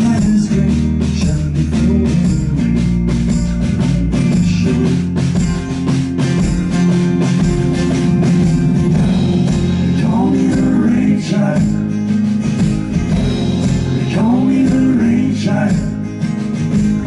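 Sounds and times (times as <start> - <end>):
man singing: 0.0 - 3.1, 3.7 - 5.2, 9.8 - 12.0, 14.0 - 16.1
live band with acoustic guitar: 0.0 - 17.0.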